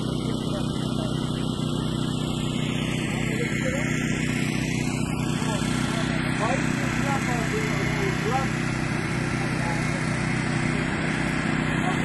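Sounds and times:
people talking: 0.0 - 2.3, 2.9 - 4.2, 5.0 - 12.0
motor engine running steadily: 0.0 - 12.0.

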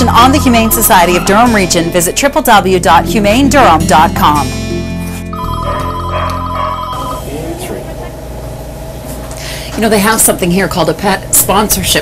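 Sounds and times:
background music: 0.0 - 7.2
electronic telephone ringer trilling: 5.4 - 7.3.

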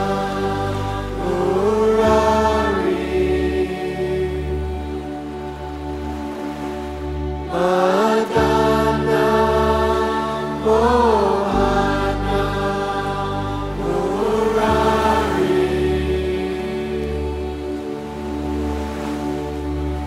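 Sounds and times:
person chanting a sung line: 0.0 - 5.2, 7.5 - 17.6
drone and bass: 8.3 - 20.0.

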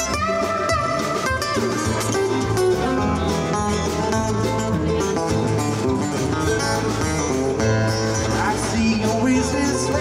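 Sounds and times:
acoustic guitar strumming: 0.0 - 10.0
drums: 0.0 - 10.0
upright bass: 0.0 - 10.0.

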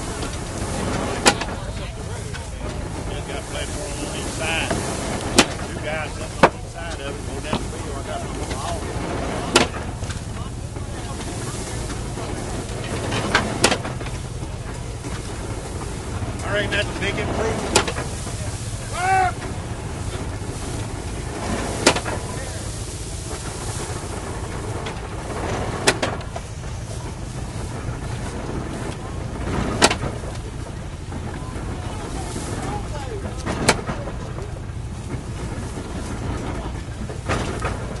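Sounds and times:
hay baler plunger knocking: 0.0 - 38.0
tractor engine hum: 0.0 - 38.0.

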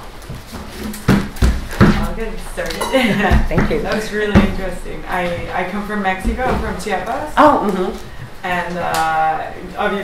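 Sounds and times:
person laughing: 2.8 - 3.8.

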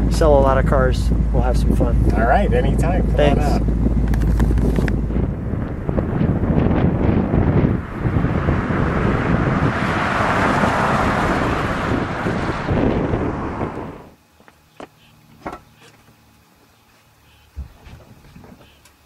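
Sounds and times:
wind buffeting microphone: 0.0 - 14.2
car driving past: 7.0 - 14.1.

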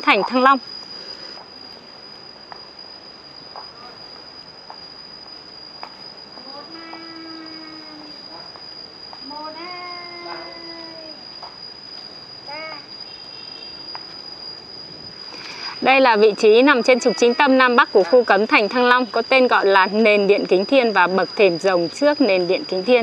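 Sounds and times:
insects droning: 0.0 - 23.0
long distant calls: 0.0 - 23.0.

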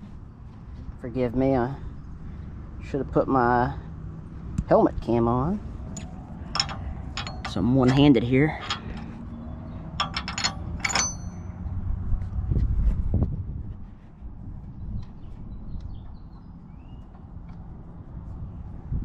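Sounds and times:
handling rumble: 3.7 - 19.0
metal pin clicking: 5.9 - 9.2, 9.8 - 11.6
metal clink with ring: 5.9 - 11.6.

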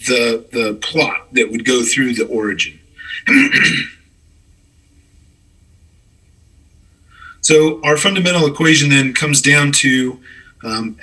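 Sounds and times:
man clearing throat: 3.0 - 4.1.

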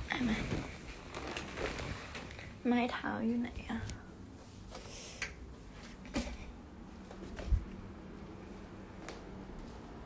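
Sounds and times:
woman speaking: 0.0 - 0.7, 2.6 - 4.1.

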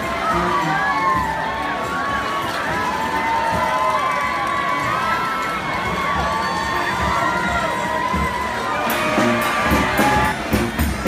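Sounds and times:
drum beats: 0.0 - 4.2, 5.6 - 11.0
crowd cheering and shouting: 0.0 - 11.0.

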